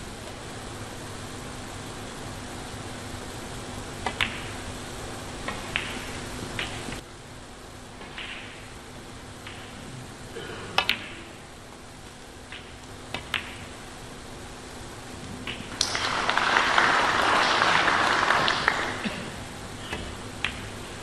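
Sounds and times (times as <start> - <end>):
steady hall hiss: 0.0 - 21.0
snooker balls clicking: 4.0 - 4.7, 5.4 - 7.0, 8.0 - 8.8, 9.4 - 9.9, 10.8 - 11.4, 12.0 - 13.8, 15.2 - 16.4, 19.8 - 21.0.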